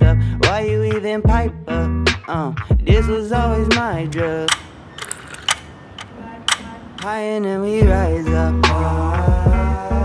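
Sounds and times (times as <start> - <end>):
backing track with bass and vocals: 0.0 - 4.6, 6.2 - 10.0.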